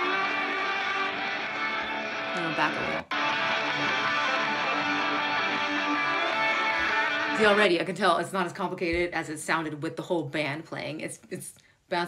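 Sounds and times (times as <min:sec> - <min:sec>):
electric guitar solo: 0:00.0 - 0:07.7
rhythm guitar: 0:00.0 - 0:09.2.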